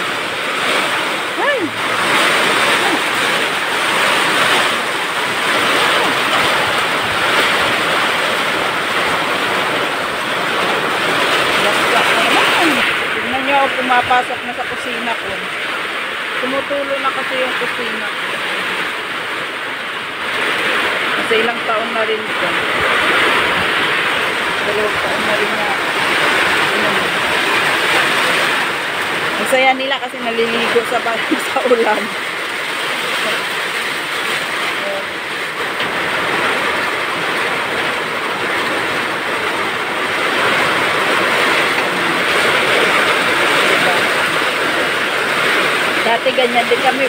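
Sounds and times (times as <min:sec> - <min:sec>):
heavy rain pouring: 0:00.0 - 0:47.0.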